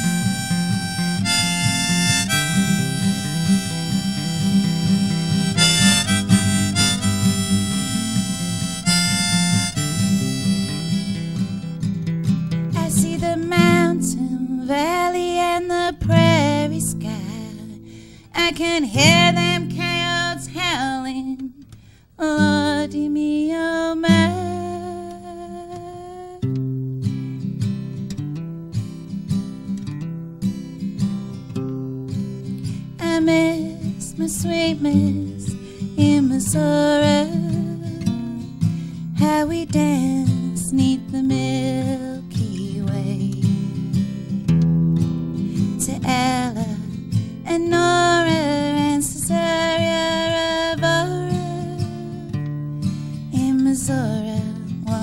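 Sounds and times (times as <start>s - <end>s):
harmonica playing: 0.0s - 11.8s
strummed acoustic guitar: 0.0s - 55.0s.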